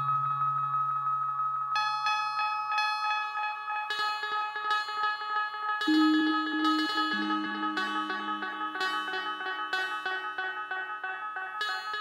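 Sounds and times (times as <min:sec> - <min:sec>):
low sustained synth bass note: 0:00.0 - 0:01.9, 0:05.9 - 0:10.4
plucked synth notes with echoes: 0:00.0 - 0:02.8, 0:05.7 - 0:12.0
high held synth tone: 0:05.9 - 0:10.8.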